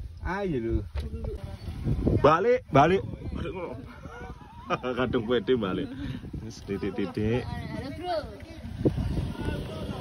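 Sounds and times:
low voices talking: 0:01.1 - 0:10.0.

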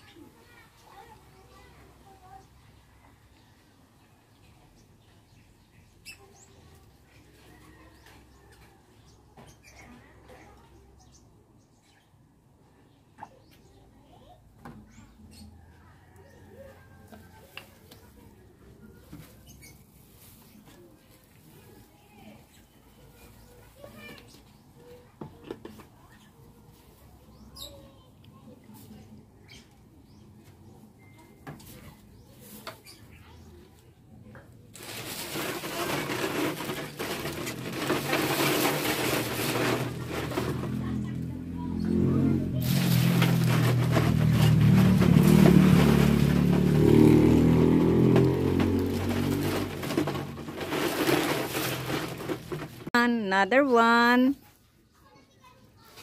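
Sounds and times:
plastic bottles clicking: 0:47.8 - 0:52.9.

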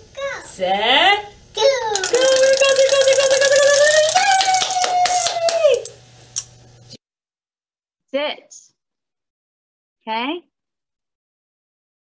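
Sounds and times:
wind-up toy clicking: 0:01.9 - 0:06.5.

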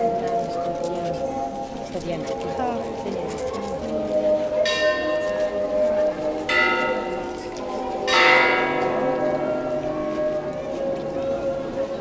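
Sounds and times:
church bell tolling: 0:03.7 - 0:12.0.

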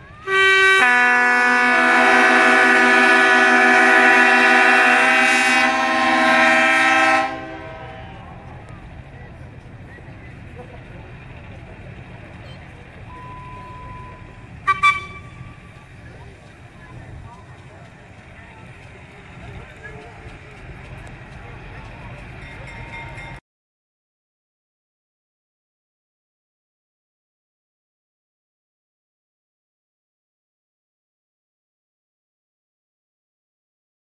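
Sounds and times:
locomotive air horn: 0:00.2 - 0:08.4, 0:13.1 - 0:15.8.

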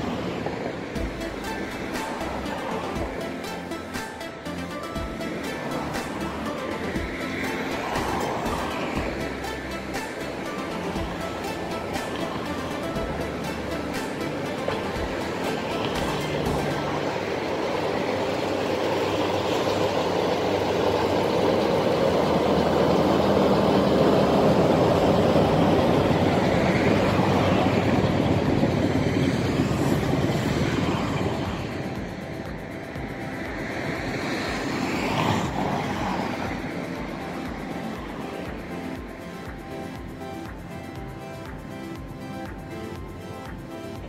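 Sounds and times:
diesel locomotive engine passing: 0:00.0 - 0:44.0.

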